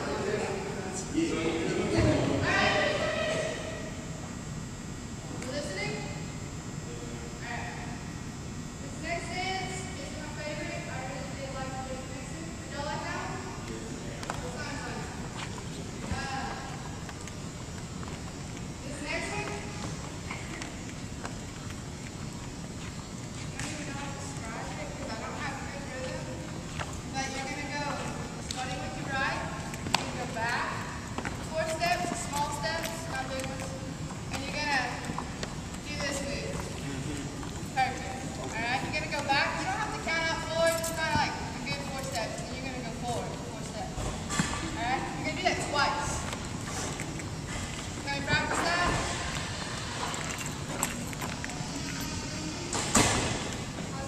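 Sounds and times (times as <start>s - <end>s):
echoing chatter of people: 0.0s - 4.2s, 34.7s - 54.0s.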